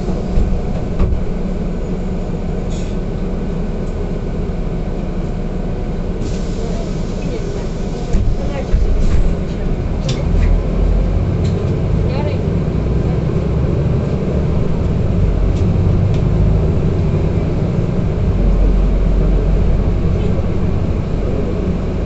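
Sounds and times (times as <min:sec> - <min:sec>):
bus engine and road rumble: 0:00.0 - 0:22.0.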